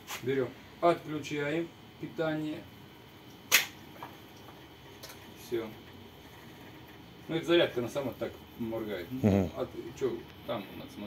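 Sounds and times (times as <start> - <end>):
sharp electrical switch click: 3.5 - 3.8.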